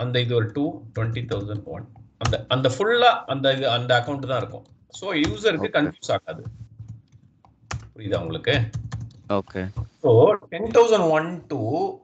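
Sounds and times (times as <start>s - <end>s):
person talking: 0.0s - 6.5s, 8.0s - 8.7s, 9.3s - 12.0s
computer keyboard typing: 6.4s - 10.0s.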